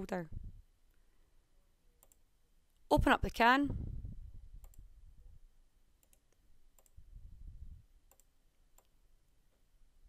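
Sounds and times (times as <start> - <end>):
computer mouse click: 2.0 - 2.2, 4.6 - 4.8, 6.0 - 7.0, 8.1 - 9.0.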